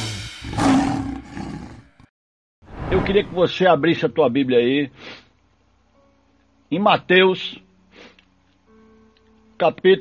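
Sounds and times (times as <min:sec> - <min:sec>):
drum kit and cymbal ringing: 0:00.0 - 0:01.0.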